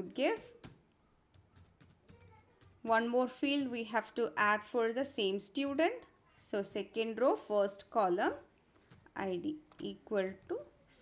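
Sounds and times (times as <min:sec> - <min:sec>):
computer keyboard typing: 0:00.5 - 0:02.8, 0:08.8 - 0:09.9.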